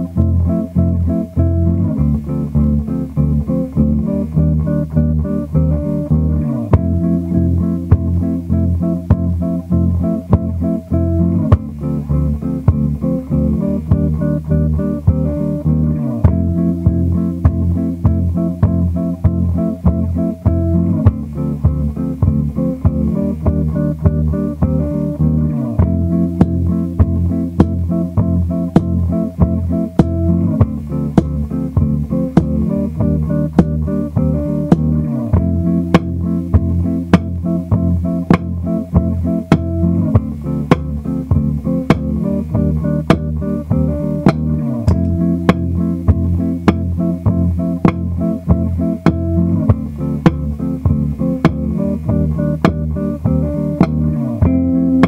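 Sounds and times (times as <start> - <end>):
electric bass played fingerstyle: 0.0 - 55.0
percussive clicks beat: 25.8 - 55.0.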